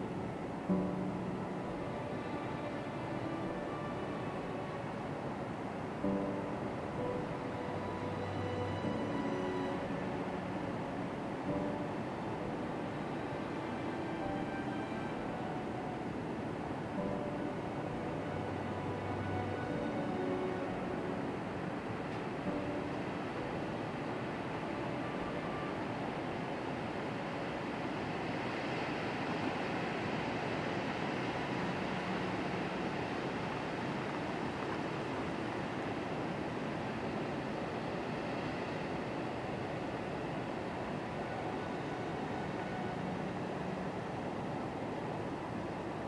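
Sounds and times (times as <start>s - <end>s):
ocean surf breaking on beach: 0.0s - 46.0s.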